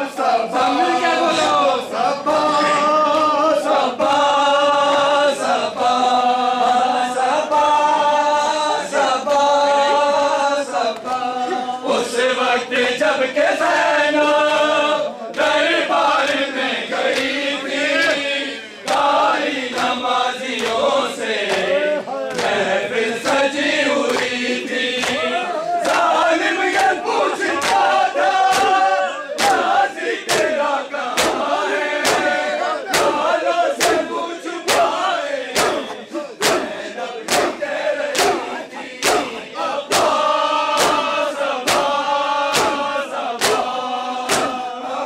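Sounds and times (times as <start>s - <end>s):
crowd of men chanting: 0.0s - 45.0s
hands slapping bare chests: 18.8s - 20.0s, 20.6s - 20.9s, 25.0s - 34.1s, 34.7s - 44.7s.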